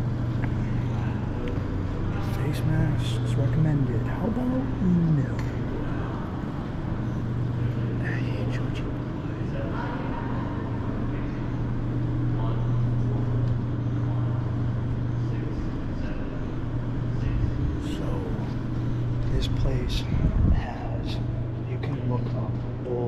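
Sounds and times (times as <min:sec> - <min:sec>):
faint indistinct voices: 0:00.0 - 0:23.0
steady low hum: 0:00.0 - 0:23.0.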